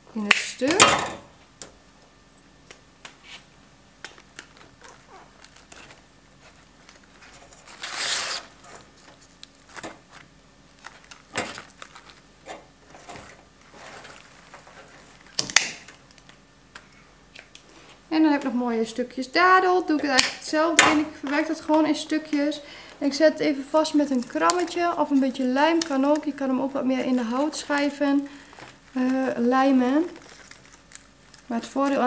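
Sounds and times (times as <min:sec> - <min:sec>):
dried moss and bark crackling: 0:21.2 - 0:32.0.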